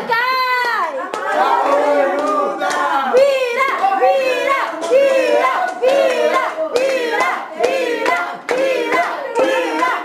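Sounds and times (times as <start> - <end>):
hands clapping: 0.0 - 10.0
group singing: 1.1 - 10.0.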